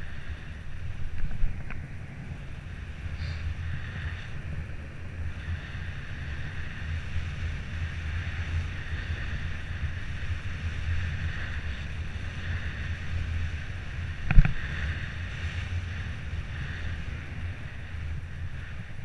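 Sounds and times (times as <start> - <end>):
bicycle tyres rumbling on asphalt: 0.0 - 19.0
wind buffeting microphone: 0.0 - 19.0.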